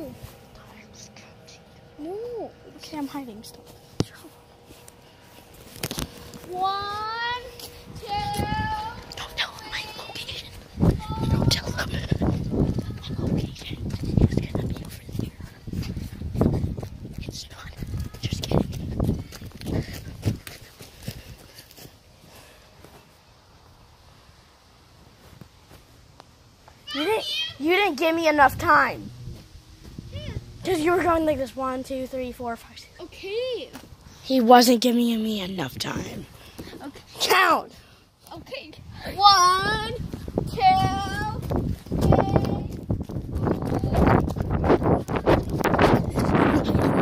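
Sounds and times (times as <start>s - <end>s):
footsteps: 0.0s - 1.8s, 2.7s - 23.8s, 25.0s - 26.9s, 28.5s - 33.0s, 40.0s - 47.0s
wind buffeting microphone: 5.8s - 21.5s, 27.6s - 32.8s, 38.4s - 47.0s.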